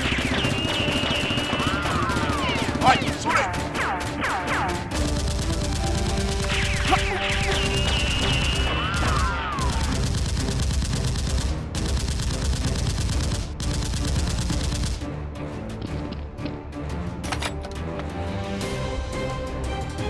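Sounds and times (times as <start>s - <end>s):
automatic gunfire bursts: 0.0s - 3.6s, 4.9s - 15.0s
background music: 0.0s - 20.0s.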